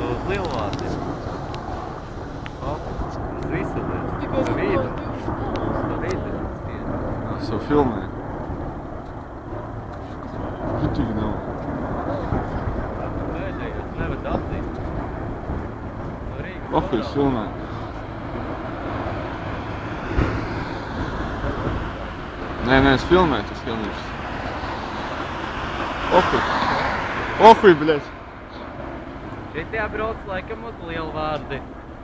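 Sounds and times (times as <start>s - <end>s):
distant helicopters flying over: 0.0s - 32.0s.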